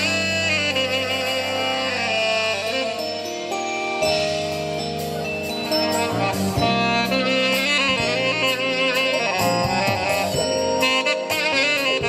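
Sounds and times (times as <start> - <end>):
alto saxophone: 0.0 - 12.0
guitar accompaniment: 0.0 - 12.0
jazz band playing: 0.0 - 12.0.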